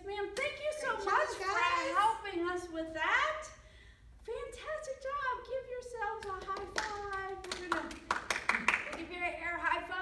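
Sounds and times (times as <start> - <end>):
hand claps: 6.2 - 9.1.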